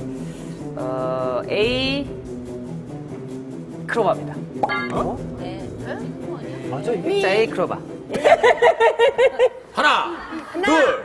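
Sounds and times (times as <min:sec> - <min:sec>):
tense background music: 0:00.0 - 0:09.4.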